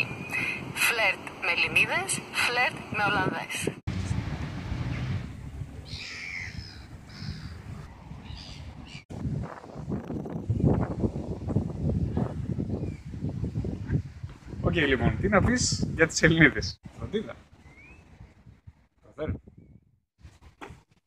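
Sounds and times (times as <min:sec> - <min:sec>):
wind buffeting microphone: 0:00.0 - 0:21.0
bird chirps: 0:05.8 - 0:09.0, 0:17.6 - 0:18.4.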